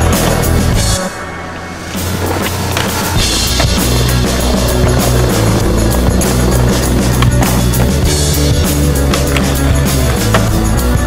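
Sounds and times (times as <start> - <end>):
skateboard clacks: 0.0 - 0.7, 1.9 - 11.0
rock music: 0.0 - 11.0
skateboard wheels rolling on concrete: 0.0 - 11.0.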